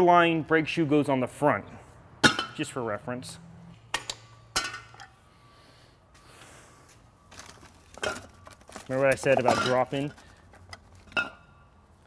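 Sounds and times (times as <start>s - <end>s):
plastic bag rustling: 7.3s - 11.1s.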